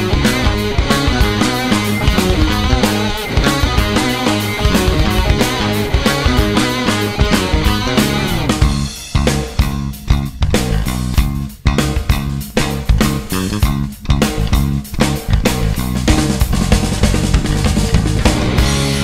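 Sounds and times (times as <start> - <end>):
drum kit hits: 0.0 - 19.0
hard rock band playing: 0.0 - 19.0.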